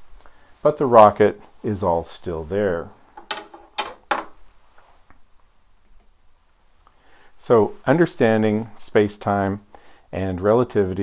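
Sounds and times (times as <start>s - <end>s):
sharp clicks and small knocks: 3.2s - 4.3s.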